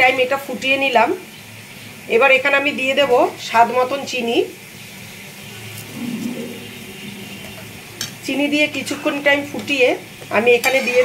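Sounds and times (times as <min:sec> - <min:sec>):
curry bubbling in a pan: 0:00.0 - 0:11.0.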